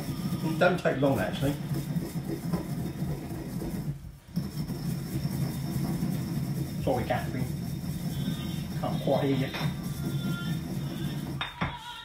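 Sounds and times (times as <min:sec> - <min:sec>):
pestle grinding seeds in mortar: 0:00.0 - 0:12.0.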